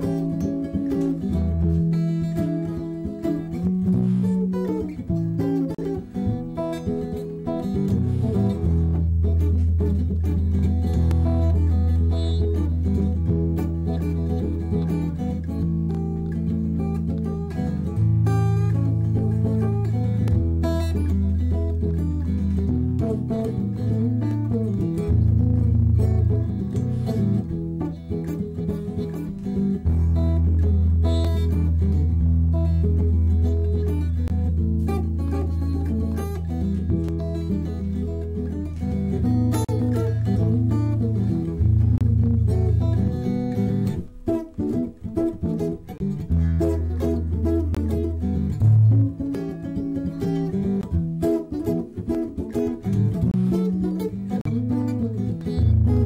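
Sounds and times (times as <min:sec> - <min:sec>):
held low bass notes: 0:00.0 - 0:49.3
plucked guitar lines: 0:00.0 - 0:56.0.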